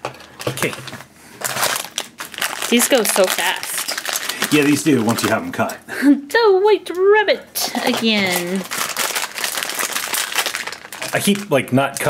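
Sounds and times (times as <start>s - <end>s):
foil bag crinkling: 0.0s - 5.5s, 7.6s - 12.0s.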